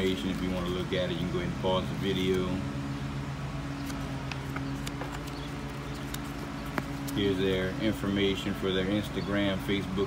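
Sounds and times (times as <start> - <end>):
paper clicks and crinkles: 0.0 - 1.2, 3.8 - 7.2
low background hum: 0.0 - 10.0.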